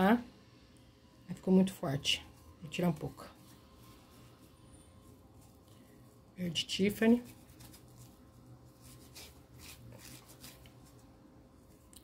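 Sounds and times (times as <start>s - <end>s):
fingers rustling fabric leaf: 1.4s - 12.0s.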